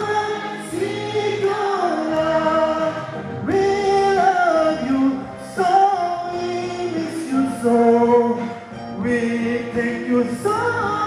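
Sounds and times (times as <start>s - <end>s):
musical backing: 0.0s - 11.0s
person singing: 0.0s - 11.0s.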